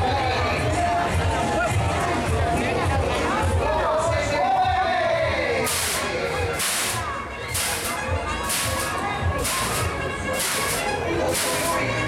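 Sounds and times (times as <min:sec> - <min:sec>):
thudding bass beat: 0:05.3 - 0:12.0
sharp hiss: 0:05.7 - 0:11.8.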